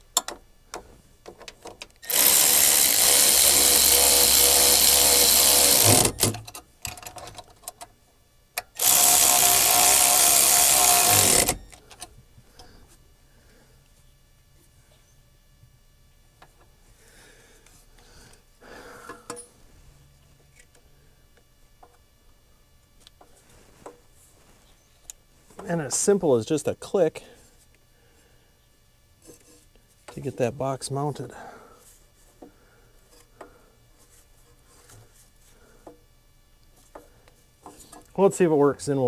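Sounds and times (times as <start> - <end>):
low steady background noise: 0.0 - 39.0
faint rustling: 23.2 - 25.8.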